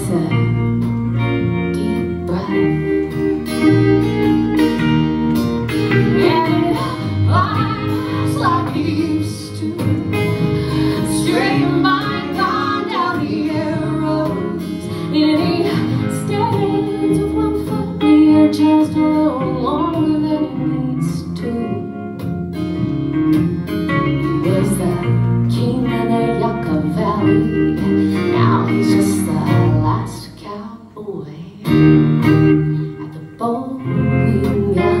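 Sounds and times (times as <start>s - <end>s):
upright bass: 0.0s - 30.2s
acoustic guitar: 0.0s - 35.0s
electric guitar: 0.0s - 35.0s.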